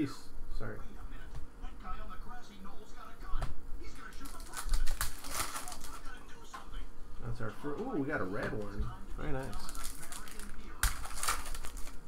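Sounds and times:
rapid card rustling: 0:03.9 - 0:06.2, 0:08.5 - 0:12.0.

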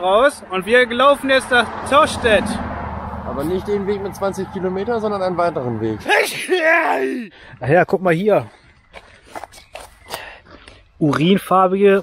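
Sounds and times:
footsteps on dirt path: 0:07.8 - 0:11.3.

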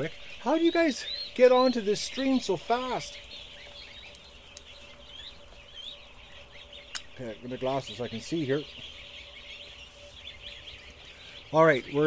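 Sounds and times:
ducklings peeping: 0:00.0 - 0:12.0
faint steady hum: 0:00.0 - 0:12.0
sharp click: 0:06.9 - 0:07.1.

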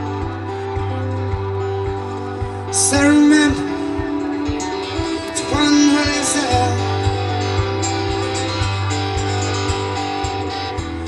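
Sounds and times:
acoustic guitar playing: 0:00.0 - 0:11.0.

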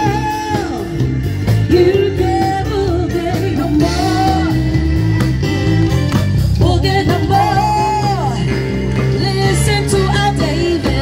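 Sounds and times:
bass line: 0:00.0 - 0:11.0
drum kit beat: 0:00.0 - 0:11.0
keyboards: 0:00.0 - 0:11.0
person singing: 0:01.7 - 0:05.4, 0:06.6 - 0:11.0.

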